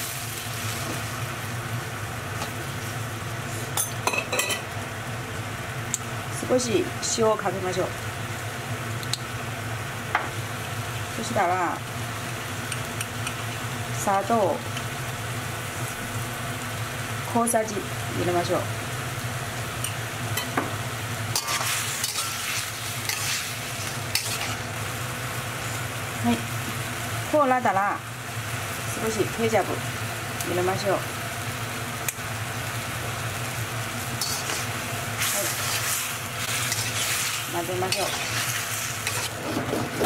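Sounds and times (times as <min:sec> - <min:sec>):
tomatoes sizzling in a wok: 0:00.0 - 0:40.0
metal spatula stirring: 0:21.4 - 0:24.7, 0:34.2 - 0:40.0.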